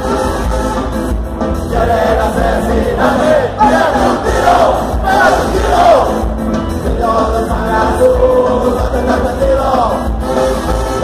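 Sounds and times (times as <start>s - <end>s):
crowd singing and shouting along: 0.0s - 11.0s
ska band playing live: 0.0s - 11.0s.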